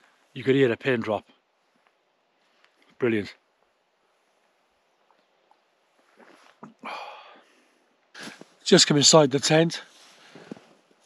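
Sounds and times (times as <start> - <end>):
man sipping from a cup: 6.1 - 7.0.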